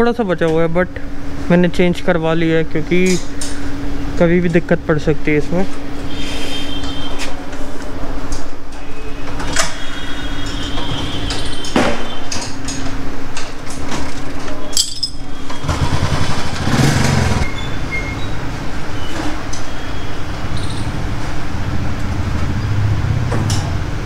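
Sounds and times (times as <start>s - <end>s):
workshop and street noise: 0.0s - 24.0s
sharp clinks or knocks: 14.7s - 15.2s
loud rumble: 15.4s - 18.9s, 20.2s - 24.0s.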